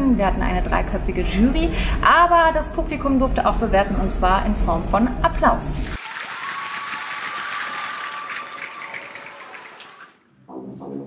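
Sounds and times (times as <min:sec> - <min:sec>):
audience applauding: 0:06.0 - 0:10.2.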